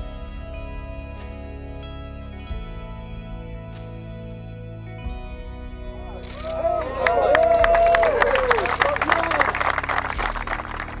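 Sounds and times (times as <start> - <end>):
people applauding: 6.2 - 11.0.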